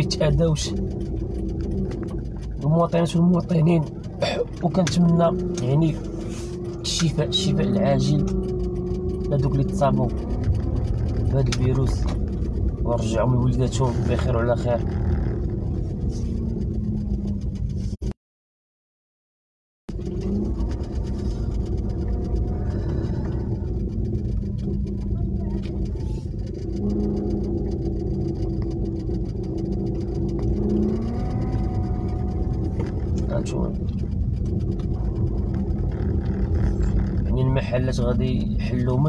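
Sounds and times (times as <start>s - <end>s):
car engine: 0.0s - 18.2s, 19.9s - 39.0s
road noise rumble: 0.0s - 18.2s, 19.9s - 39.0s.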